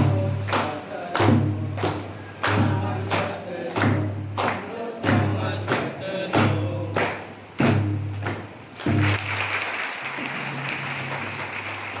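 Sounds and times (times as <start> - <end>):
group singing: 0.0 - 7.2
hand claps: 0.4 - 12.0.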